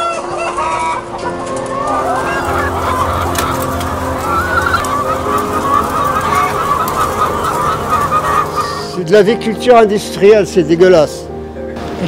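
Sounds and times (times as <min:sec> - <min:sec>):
hens calling: 0:00.0 - 0:09.2.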